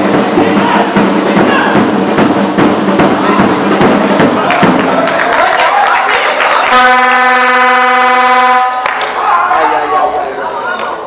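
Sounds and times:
horn long steady note: 6.6 - 9.0.

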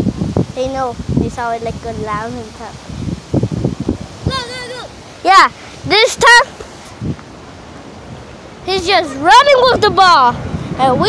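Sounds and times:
wind buffeting microphone: 0.0 - 11.0
child calling out: 4.2 - 6.5, 8.7 - 10.3.

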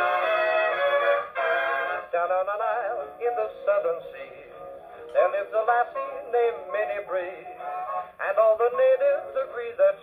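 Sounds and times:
swing dance-band music on gramophone: 0.0 - 10.0.

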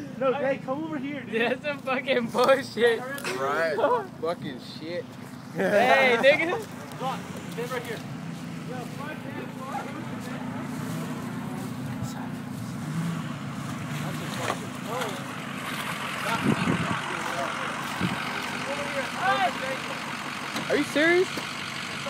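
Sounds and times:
diesel truck engine running: 0.0 - 22.0.

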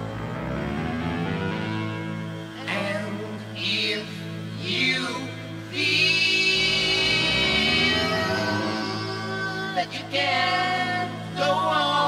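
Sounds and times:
distorted electric guitar chord: 0.0 - 4.5, 6.5 - 11.2.

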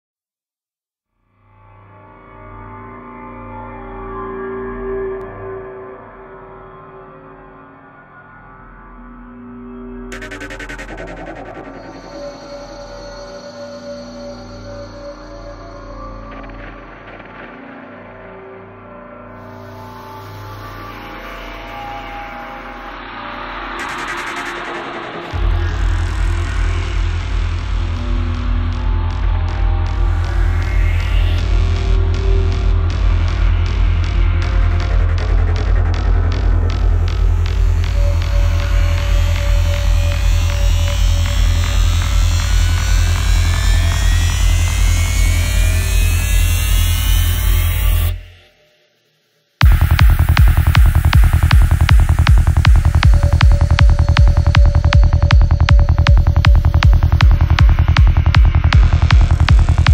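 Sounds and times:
noise sweep: 10.1 - 12.4, 23.1 - 26.7, 49.6 - 59.9
pulsing bass line: 10.1 - 13.1, 23.6 - 48.3, 49.6 - 59.9
rapid electronic percussion: 10.1 - 13.4, 23.5 - 48.2, 49.6 - 59.9
sustained synth tones: 49.6 - 59.9.

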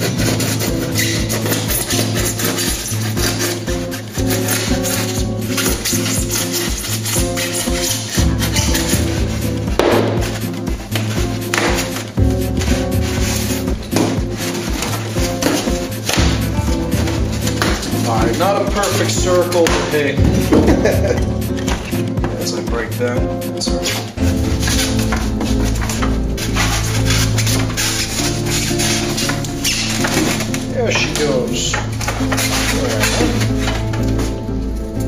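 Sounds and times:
background music with bass line: 0.0 - 35.0.

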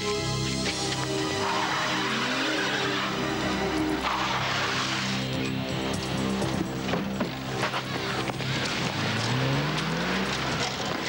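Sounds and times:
music: 0.0 - 11.0
car engine and tyres pulling away: 0.3 - 11.0.

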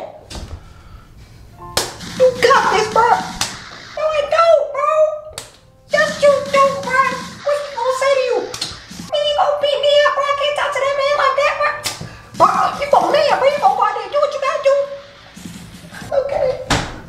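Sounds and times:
background music: 0.0 - 17.0
sharp slaps or claps: 1.8 - 3.7, 11.8 - 12.1.

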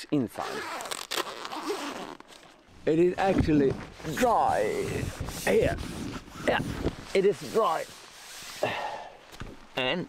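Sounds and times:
tent zipper pulled open: 0.3 - 2.6, 3.2 - 8.7.

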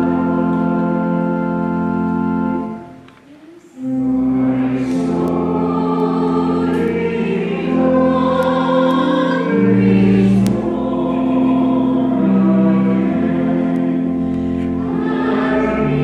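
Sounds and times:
church organ chords: 0.0 - 3.1, 3.8 - 16.0
voices singing: 3.3 - 16.0.

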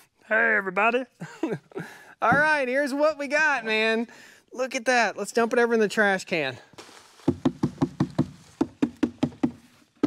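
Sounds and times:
plastic hopper knocking: 7.3 - 9.6.

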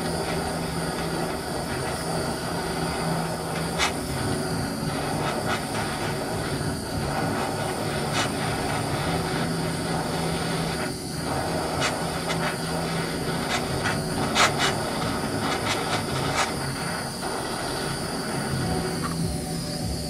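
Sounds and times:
torch flame hissing: 0.0 - 20.0.

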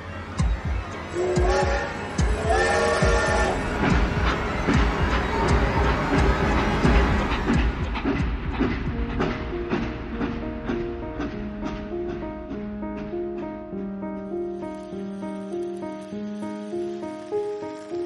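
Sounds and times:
film score music: 0.0 - 18.0.

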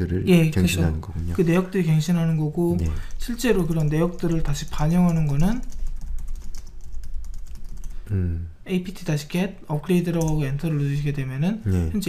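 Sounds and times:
steady low hum: 0.0 - 12.0
typing on a keyboard: 3.1 - 8.0, 10.1 - 10.4.

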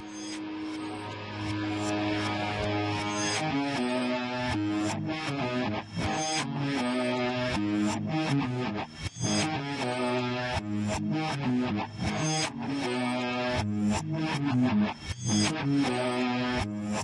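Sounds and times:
electric guitar riff: 0.0 - 17.0
hard rock music: 0.0 - 17.0.

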